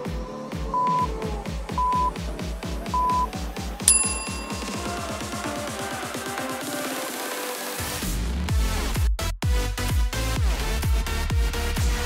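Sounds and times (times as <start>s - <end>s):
longer brighter beep: 0.8s - 1.1s, 3.9s - 5.2s
short timer beeps: 0.8s - 1.1s, 1.8s - 2.1s, 3.0s - 3.3s, 3.9s - 5.0s.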